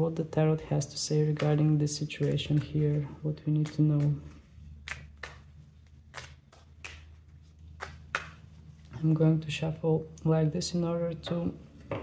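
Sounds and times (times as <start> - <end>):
cards tapping and shuffling: 1.2 - 9.0.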